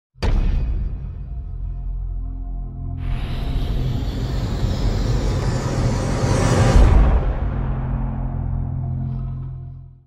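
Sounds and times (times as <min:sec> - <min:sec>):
low rumbling music: 0:00.2 - 0:10.0
noisy whoosh: 0:03.0 - 0:09.1.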